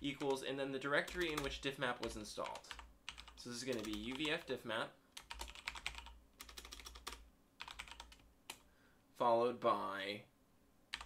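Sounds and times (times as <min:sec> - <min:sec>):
keyboard typing: 0:01.0 - 0:04.5, 0:05.2 - 0:08.7.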